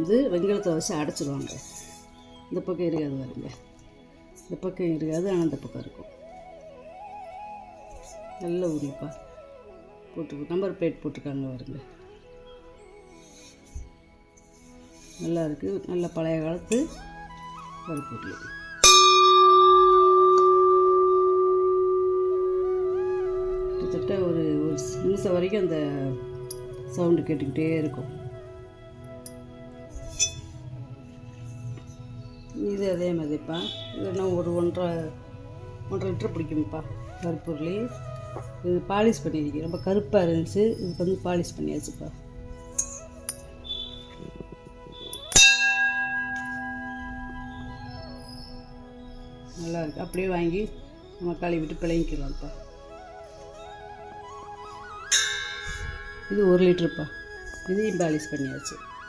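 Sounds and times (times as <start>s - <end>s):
struck metal vessel ringing: 18.8s - 27.3s, 30.1s - 30.5s, 44.9s - 47.9s, 55.1s - 57.2s.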